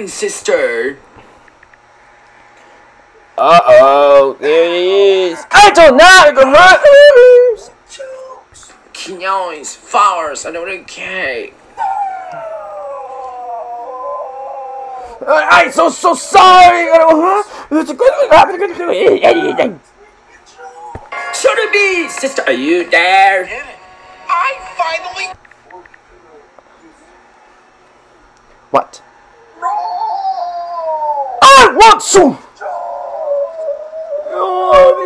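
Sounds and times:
child whining: 11.8s - 15.2s, 29.6s - 31.6s.

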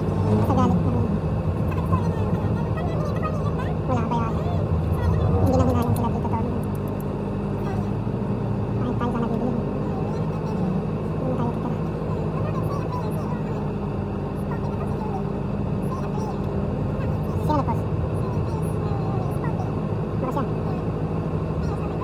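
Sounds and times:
car engine and road hum: 0.0s - 22.0s.

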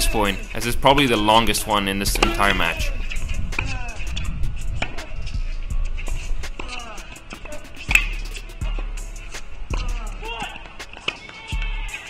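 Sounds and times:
background music: 0.0s - 12.0s
racket hitting tennis ball: 1.4s - 12.0s
sneaker squeaks: 2.2s - 12.0s.

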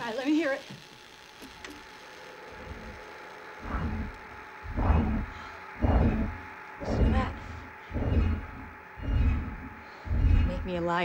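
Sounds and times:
faint steady hum: 0.0s - 11.0s
deep pulses through speakers: 2.5s - 11.0s.

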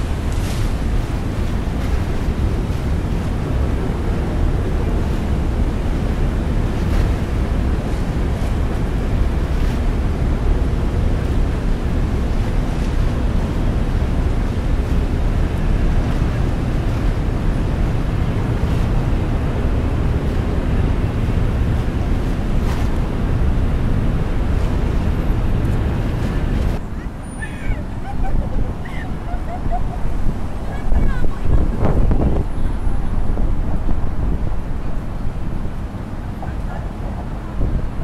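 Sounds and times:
water slapping against pier: 0.0s - 38.0s
wind on microphone: 0.0s - 38.0s.

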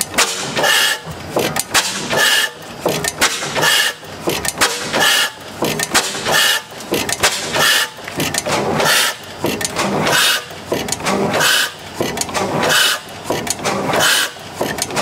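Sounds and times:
engine mechanical clatter: 0.0s - 15.0s
stationary engine beating: 0.0s - 15.0s.

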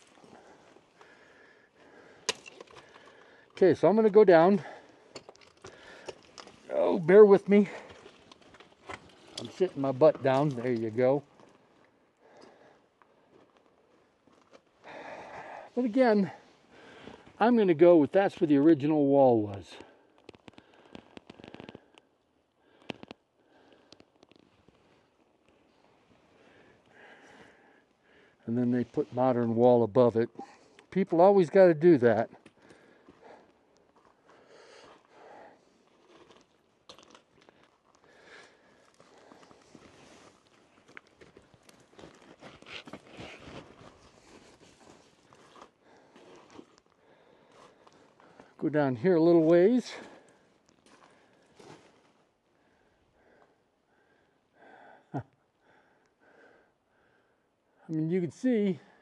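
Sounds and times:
gravel crackling underfoot: 0.0s - 53.6s
stones scraping and clicking: 5.1s - 6.7s, 20.2s - 22.1s.

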